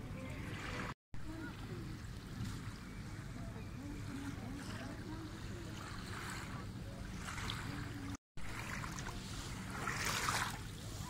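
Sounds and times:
distant voices talking: 0.0 - 10.1
small waves at shore: 0.0 - 11.0.

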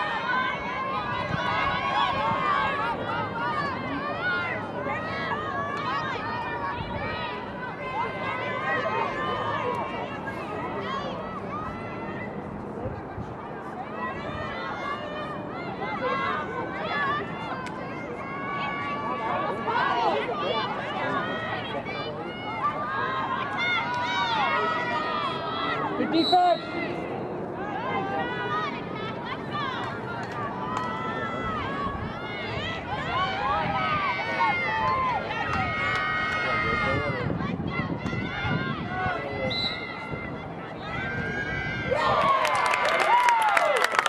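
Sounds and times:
voices shouting and calling out: 0.0 - 43.8
crowd clapping and cheering: 41.8 - 44.0.

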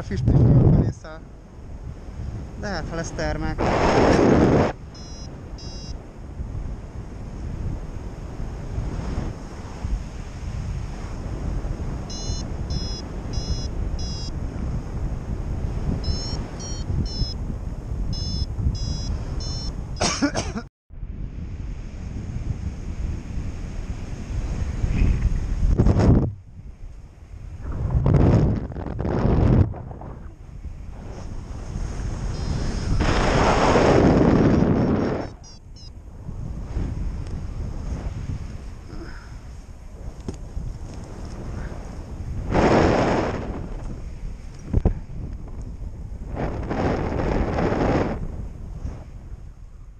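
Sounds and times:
wind rushing over microphone: 0.0 - 20.0, 20.9 - 49.9
variometer beeping chirps: 4.9 - 6.0, 12.1 - 14.3, 16.0 - 17.4, 18.1 - 19.8, 32.4 - 33.0, 34.8 - 36.0.

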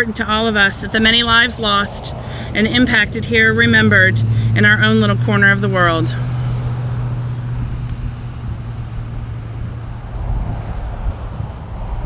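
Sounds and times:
constant low hum: 0.0 - 12.0
highway traffic rumble: 0.0 - 12.0.

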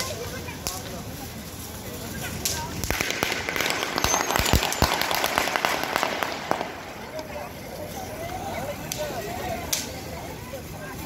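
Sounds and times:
firecrackers crackling: 0.0 - 11.0
voices chattering: 0.0 - 11.0.

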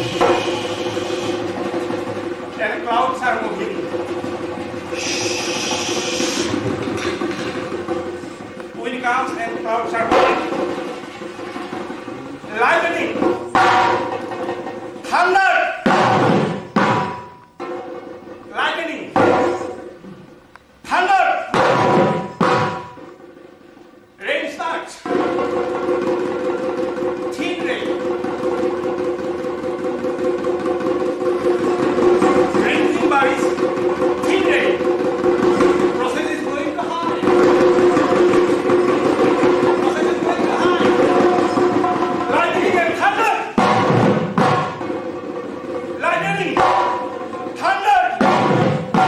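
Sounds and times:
dhol drums played with stick and hand: 0.0 - 15.1, 15.8 - 20.0, 21.5 - 23.3, 25.0 - 49.0.

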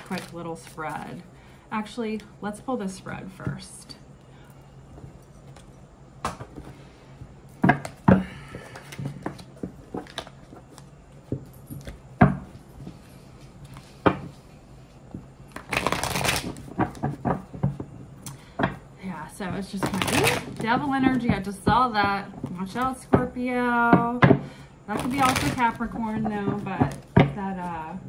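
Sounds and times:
cards shuffling rustle: 0.0 - 1.0, 7.8 - 14.5, 15.1 - 18.0, 19.5 - 21.6, 24.9 - 27.8
cards tapping and knocking: 4.9 - 6.8, 7.5 - 13.0, 13.7 - 14.4, 15.1 - 18.8, 19.4 - 23.3, 23.9 - 27.8.

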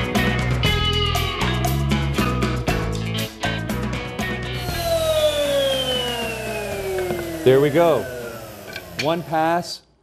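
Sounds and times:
guitar rock music: 0.0 - 4.9
router motor winding down: 4.6 - 9.8.

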